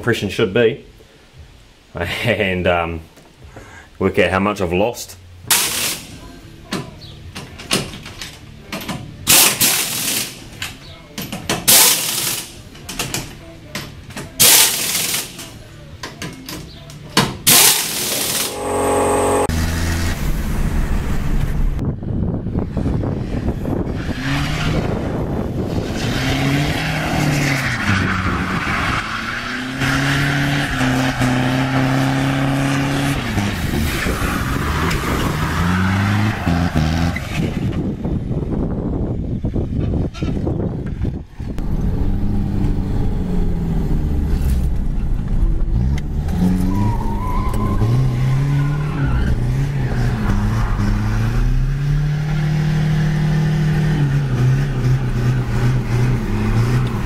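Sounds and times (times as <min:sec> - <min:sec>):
pneumatic impact wrench rattling: 0:05.5 - 0:06.2, 0:09.3 - 0:10.4, 0:11.7 - 0:12.6, 0:14.4 - 0:15.5, 0:17.5 - 0:19.2
diesel engine revving: 0:17.5 - 0:21.8, 0:23.7 - 0:37.4, 0:41.6 - 0:57.0.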